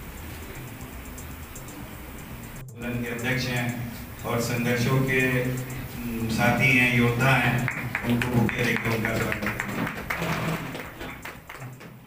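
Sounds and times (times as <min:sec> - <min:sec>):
faint voices: 0:02.6 - 0:11.3.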